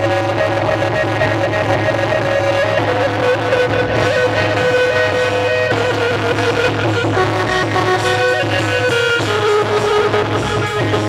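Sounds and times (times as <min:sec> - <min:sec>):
low accompaniment: 0:00.6 - 0:11.0
plucked lute melody: 0:00.7 - 0:11.0.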